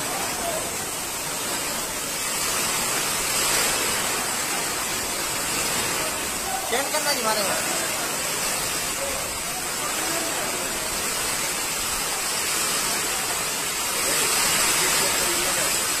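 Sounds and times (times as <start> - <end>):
floodwater rushing: 0.0 - 16.0
heavy rain pouring: 0.0 - 16.0.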